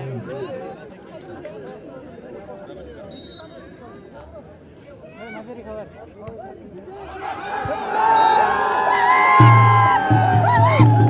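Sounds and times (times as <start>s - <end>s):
crowd chattering: 0.0s - 11.0s.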